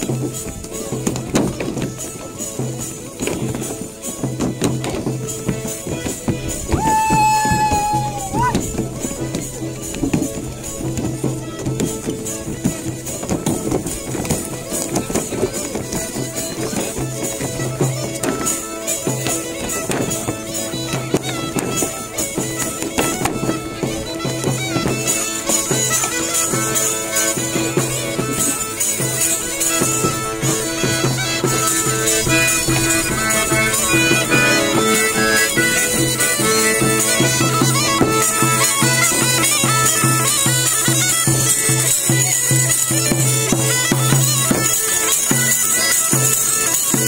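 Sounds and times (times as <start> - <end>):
bagpipe folk dance tune: 0.0 - 47.0
frame drum with jingles: 0.0 - 47.0.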